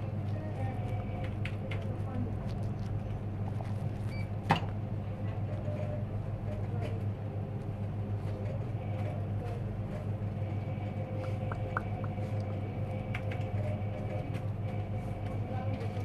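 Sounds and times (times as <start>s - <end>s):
low hum of shop interior: 0.0s - 16.0s.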